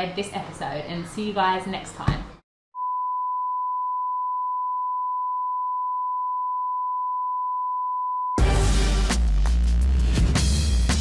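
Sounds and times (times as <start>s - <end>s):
loud music: 8.4s - 11.0s.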